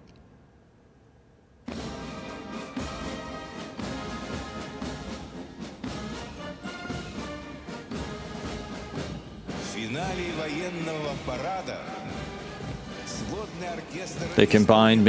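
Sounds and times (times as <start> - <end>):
brass band playing a march: 1.7 - 15.0
drum beats: 1.7 - 15.0.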